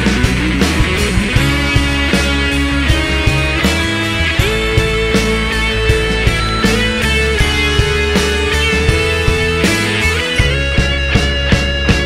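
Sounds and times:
instrumental pop-rock band music: 0.0 - 12.0.

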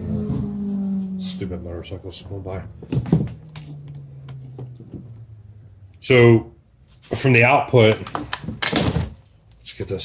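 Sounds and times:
passing motorcycle drone: 0.0 - 6.6.

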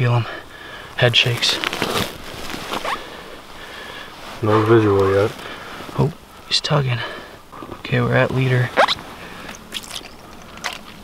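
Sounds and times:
fishing line rustling: 8.8 - 11.0.

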